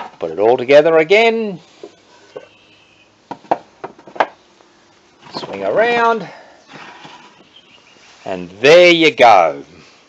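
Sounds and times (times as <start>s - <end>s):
wooden boxes knocking together: 3.3s - 4.4s.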